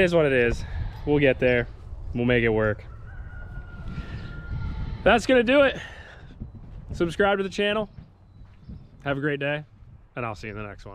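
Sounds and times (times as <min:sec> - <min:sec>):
wind on microphone: 0:00.0 - 0:07.3, 0:07.9 - 0:10.9
distant rooster crowing: 0:02.6 - 0:05.3.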